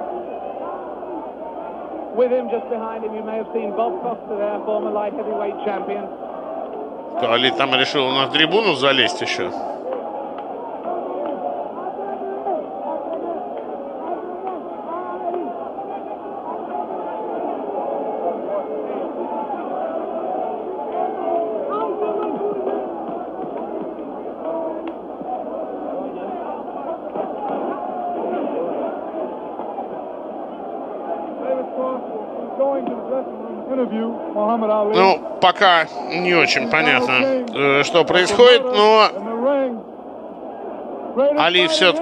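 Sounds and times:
stadium crowd shouting: 0:00.0 - 0:42.0.

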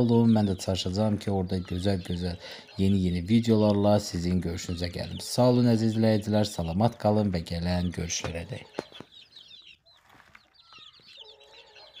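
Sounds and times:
chicks peeping: 0:00.0 - 0:12.0.

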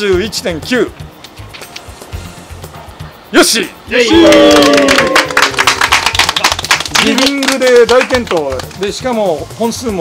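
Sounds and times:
background music: 0:00.0 - 0:10.0
group clapping by hand: 0:04.1 - 0:09.0.

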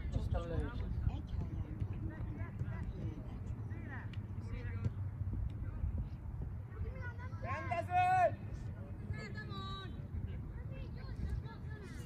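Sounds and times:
distant shouts of players: 0:06.8 - 0:10.5.

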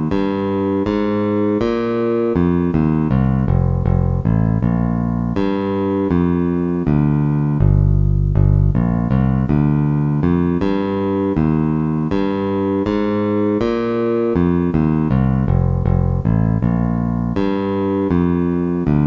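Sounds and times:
sampled bass notes: 0:00.0 - 0:19.0.

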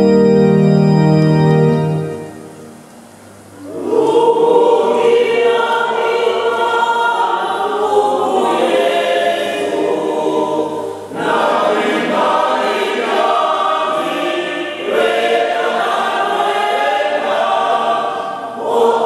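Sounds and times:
mixed choir singing in parts: 0:03.6 - 0:19.0.

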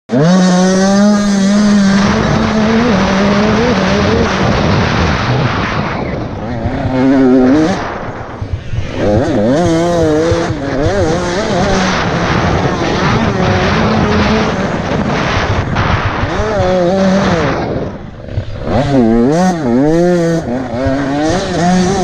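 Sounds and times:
motorcycle engine revving: 0:00.1 - 0:22.0.

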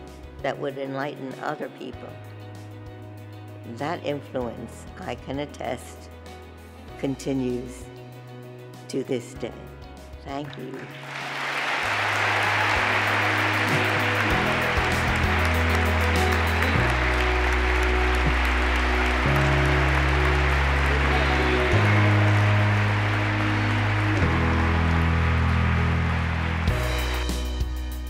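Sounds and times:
large audience applauding: 0:10.9 - 0:28.0.

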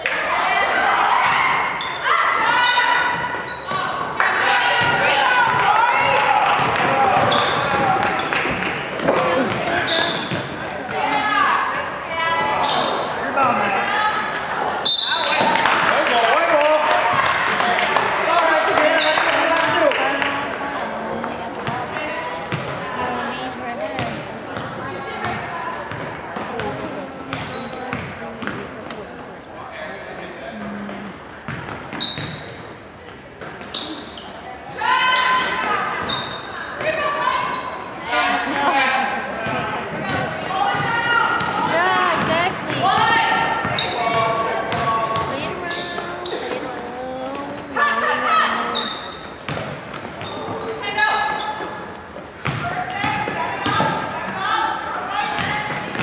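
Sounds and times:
sneaker squeaks: 0:00.0 - 0:06.1, 0:07.1 - 0:15.6, 0:18.8 - 0:20.5, 0:21.6 - 0:28.8, 0:29.6 - 0:38.6, 0:39.4 - 0:56.0
voices in gym: 0:00.0 - 0:56.0.

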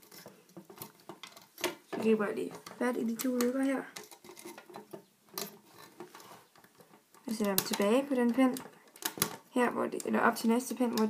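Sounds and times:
metal hook clicking on plastic pegs: 0:07.2 - 0:11.0.

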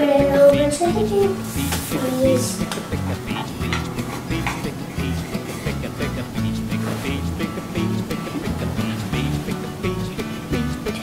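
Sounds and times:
background music with bass and beat: 0:00.2 - 0:11.0.

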